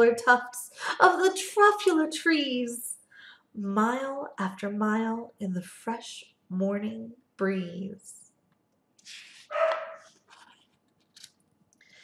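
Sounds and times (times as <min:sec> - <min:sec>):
book page turning: 0:09.0 - 0:11.5
dog barking: 0:09.5 - 0:10.1.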